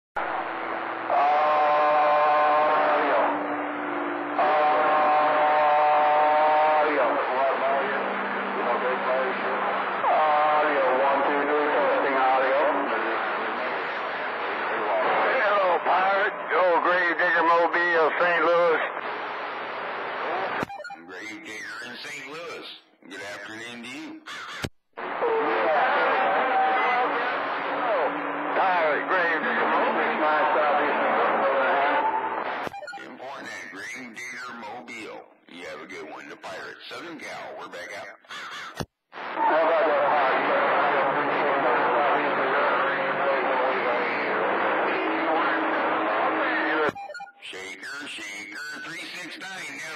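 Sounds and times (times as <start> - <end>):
steady radio tones: 0.2 - 38.3, 39.2 - 49.9
garbled radio voices: 1.1 - 49.9.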